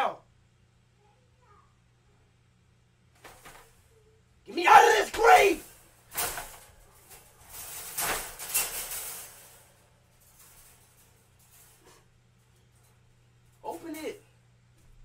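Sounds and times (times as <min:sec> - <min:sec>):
man laughing and shrieking: 0:04.6 - 0:05.6.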